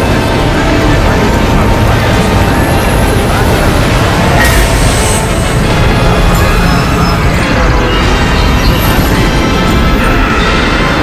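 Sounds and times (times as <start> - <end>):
overlapping music and sound effects: 0.0 - 11.0.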